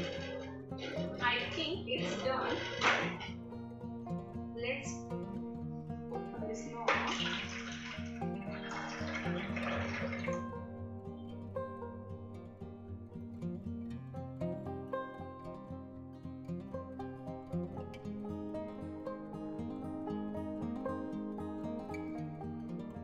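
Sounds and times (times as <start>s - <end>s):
background music: 0.0s - 23.0s
juice pouring into a jug: 7.0s - 10.5s.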